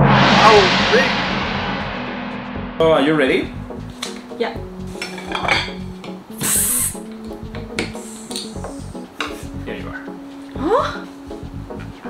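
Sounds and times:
background music: 0.0s - 12.0s
carbonation hiss: 6.3s - 7.1s, 7.9s - 8.9s.

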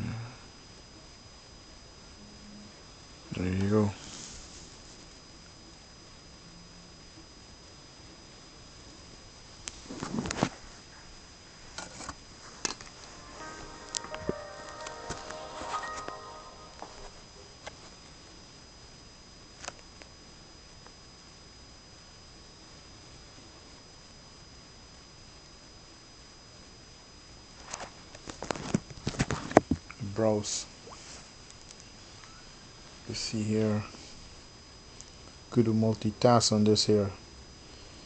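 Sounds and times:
phone startup chime: 13.0s - 17.4s.

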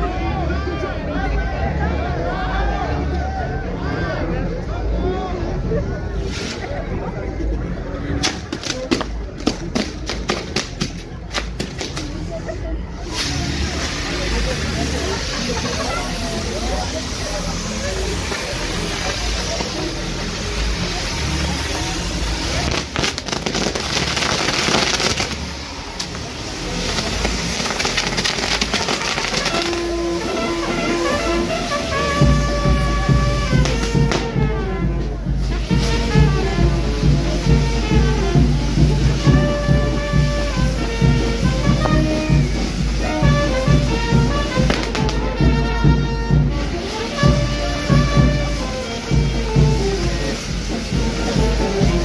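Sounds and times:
hiss of burning pyrotechnics: 6.1s - 52.0s
firecracker cracks: 6.2s - 6.8s, 8.1s - 34.5s, 35.4s - 45.7s
music: 13.2s - 52.0s.

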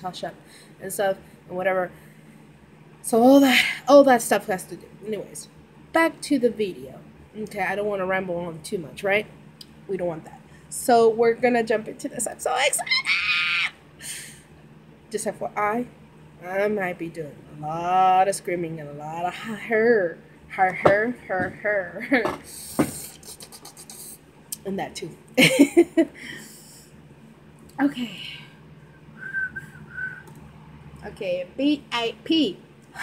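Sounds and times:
woman squealing: 12.6s - 13.8s
breathy hiss: 22.5s - 24.2s.

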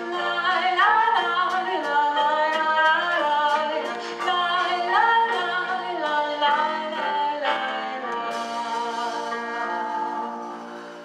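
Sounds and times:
double bass: 0.0s - 11.0s
drum kit: 0.0s - 11.0s
woman singing folk song: 0.0s - 11.0s.

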